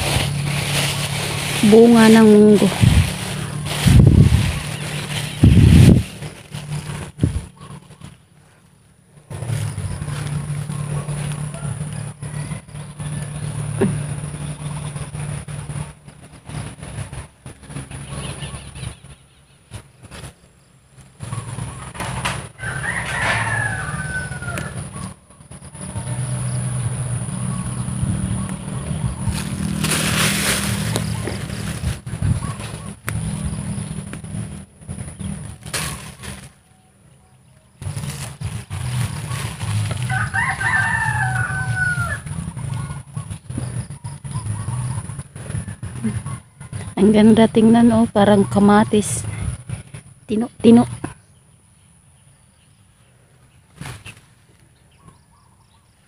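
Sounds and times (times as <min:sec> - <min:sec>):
walking through weeds: 0:00.0 - 0:08.2, 0:09.3 - 0:14.4, 0:28.0 - 0:36.7, 0:37.8 - 0:43.9
rooster crowing: 0:11.2 - 0:13.3, 0:22.5 - 0:25.1, 0:39.6 - 0:43.0.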